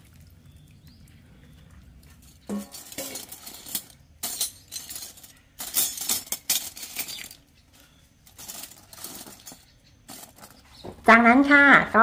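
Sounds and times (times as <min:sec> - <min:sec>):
spoons and forks clinking: 0:02.5 - 0:07.4.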